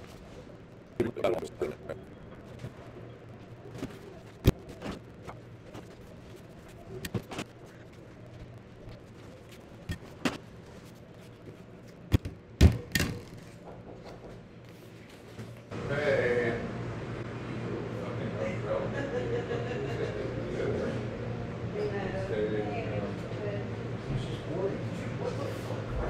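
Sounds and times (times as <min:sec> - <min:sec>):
faint steady hum: 0:00.0 - 0:26.0.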